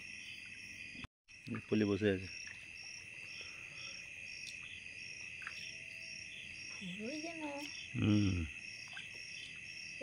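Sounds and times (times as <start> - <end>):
crickets trilling: 0.0 - 10.0
high insect chirping: 0.0 - 10.0.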